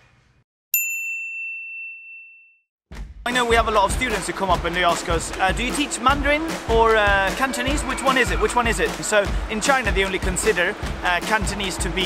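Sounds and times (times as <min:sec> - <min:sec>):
high bell-like ding: 0:00.8 - 0:02.6.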